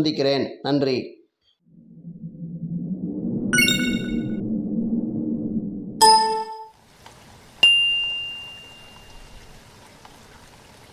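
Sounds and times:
high ding: 0:06.0 - 0:06.7, 0:07.6 - 0:09.0.

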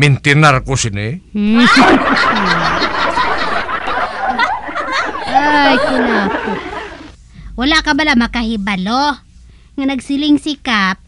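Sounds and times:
person laughing: 0:01.5 - 0:07.1.

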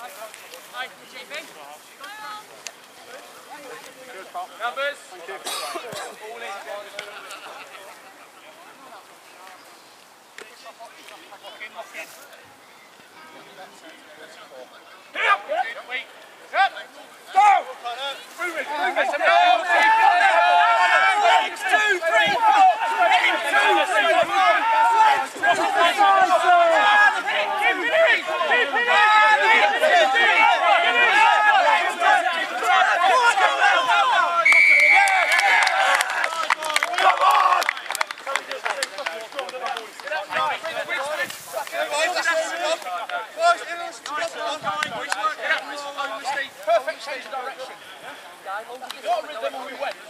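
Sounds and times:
men shouting: 0:18.5 - 0:37.6
high whistle blast: 0:34.4 - 0:35.4.

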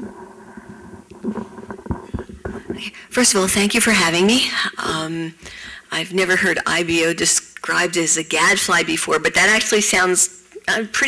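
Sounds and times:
microphone handling noise: 0:00.0 - 0:03.1
faint steady hum: 0:00.0 - 0:11.0.

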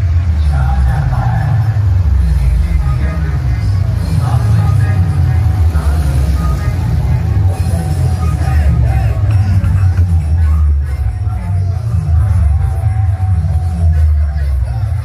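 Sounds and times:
loud music with pulsing bass: 0:00.0 - 0:15.0
voice over music: 0:00.0 - 0:15.0.

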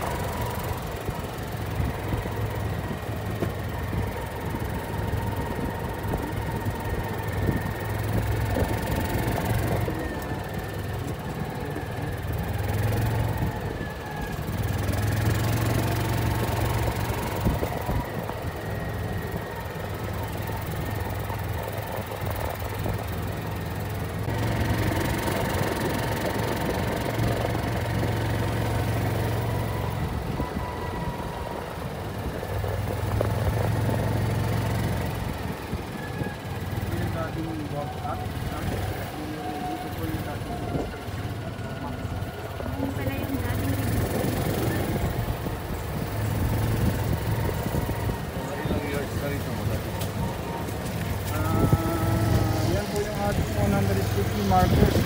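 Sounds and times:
golf cart motor hum: 0:00.0 - 0:55.0.

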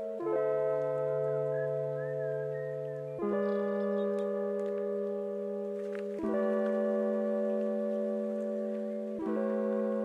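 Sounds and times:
wavering high melody: 0:00.0 - 0:10.0.

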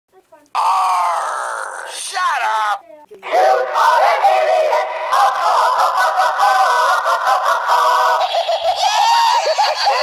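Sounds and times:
synthetic singing voice: 0:03.2 - 0:08.5.

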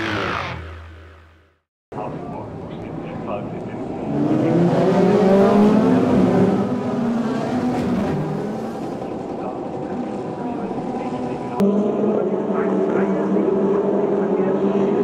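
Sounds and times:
racing car engines accelerating: 0:02.0 - 0:15.0.

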